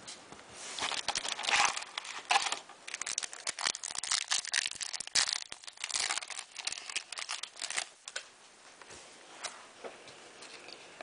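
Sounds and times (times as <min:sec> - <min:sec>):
handling of cards: 0:00.2 - 0:08.3
foil wrapper tearing and crinkling: 0:00.8 - 0:07.9.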